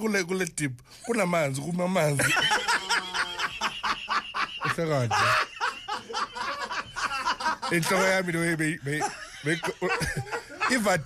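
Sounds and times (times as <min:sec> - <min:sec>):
people laughing hard: 0:02.1 - 0:11.0.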